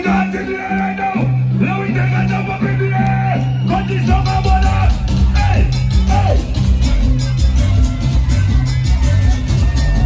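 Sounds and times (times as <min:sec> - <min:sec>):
loud soca music over speakers: 0:00.0 - 0:10.0.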